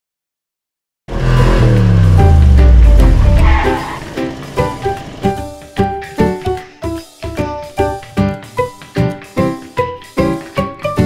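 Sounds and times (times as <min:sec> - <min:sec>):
engine-like sound falling in pitch: 0:01.1 - 0:05.6
music: 0:01.1 - 0:11.0.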